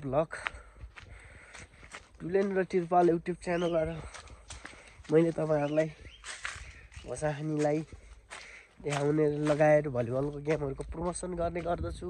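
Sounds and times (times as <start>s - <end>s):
man speaking: 0.0s - 0.5s, 2.2s - 4.2s, 5.0s - 6.0s, 7.0s - 8.0s, 8.8s - 12.0s
footsteps on dry trail: 0.0s - 12.0s.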